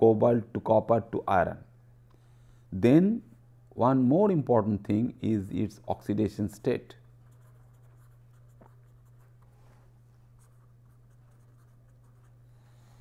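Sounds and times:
low electrical hum: 0:00.0 - 0:13.0
pen scratching on paper: 0:07.2 - 0:09.4, 0:10.4 - 0:12.4.

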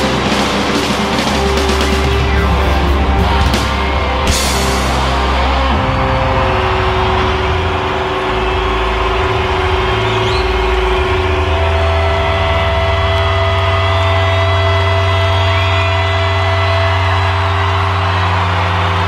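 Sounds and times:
crowd cheering: 0:00.0 - 0:19.0
crowd whistling: 0:00.0 - 0:19.0
electric guitars droning: 0:00.0 - 0:19.0.

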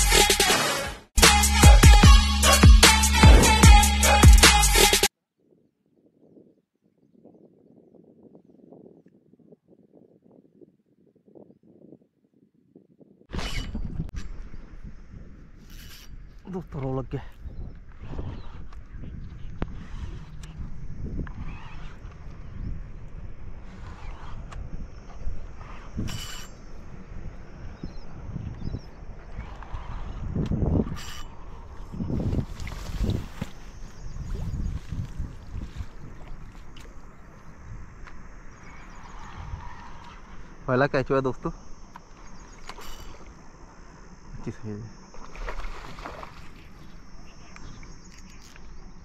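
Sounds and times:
wind buffeting microphone: 0:05.4 - 0:40.8.

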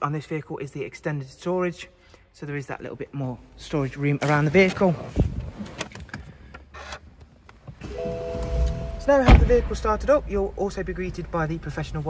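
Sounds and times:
car engine starting: 0:05.3 - 0:12.0.

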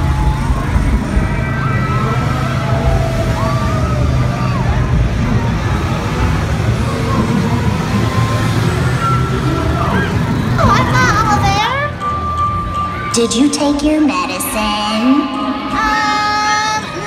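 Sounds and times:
loud steady low rumble: 0:00.0 - 0:12.0, 0:12.9 - 0:17.0
many people talking: 0:00.0 - 0:17.0.

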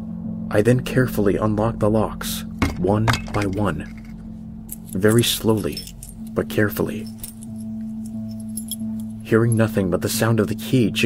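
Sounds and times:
low music drone: 0:00.0 - 0:11.0.

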